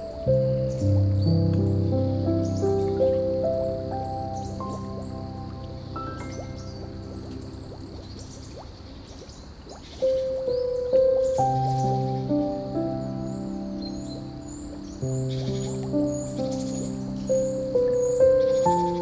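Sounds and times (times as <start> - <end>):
bird chirping: 0.0 - 19.0
slow soft piano music: 0.0 - 19.0.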